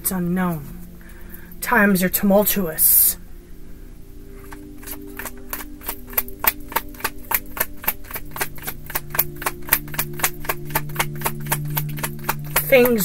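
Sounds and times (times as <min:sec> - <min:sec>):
cards being shuffled: 0:04.4 - 0:13.0.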